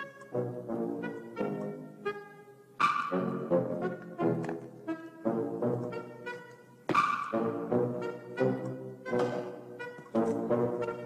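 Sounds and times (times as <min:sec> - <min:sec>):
brass music: 0:00.0 - 0:11.0.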